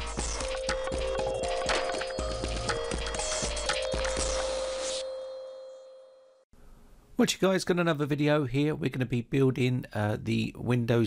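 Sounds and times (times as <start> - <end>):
steady clicking beat: 0.0 - 5.0
held music tone: 0.0 - 6.4.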